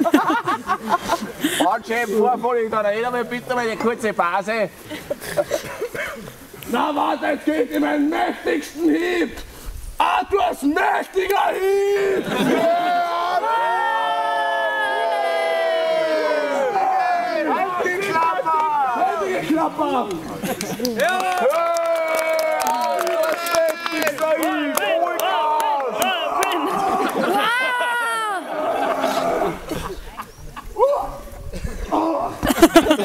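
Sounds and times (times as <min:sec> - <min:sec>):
men yelling: 0:06.7 - 0:09.3, 0:10.0 - 0:20.2, 0:21.0 - 0:29.7
crowd voices: 0:10.2 - 0:33.0.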